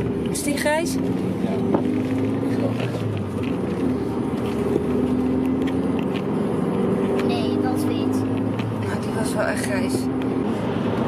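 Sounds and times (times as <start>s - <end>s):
car engine drone: 0.0s - 11.0s
road noise inside car: 0.0s - 11.0s.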